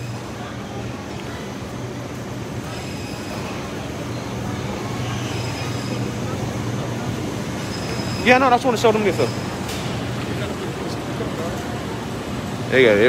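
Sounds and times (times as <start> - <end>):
refrigerated display cases humming: 0.0 - 13.0
ventilation running: 0.0 - 13.0.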